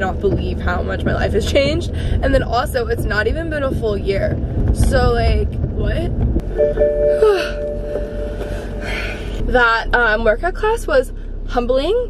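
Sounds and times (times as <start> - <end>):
car cabin rumble: 0.0 - 12.0
held musical tone: 6.4 - 12.0
woman sighing: 7.0 - 9.4.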